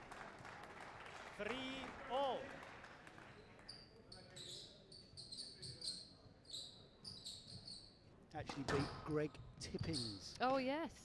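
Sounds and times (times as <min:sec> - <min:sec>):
shoes squeaking on hardwood floor: 0:04.3 - 0:08.1, 0:09.6 - 0:10.3.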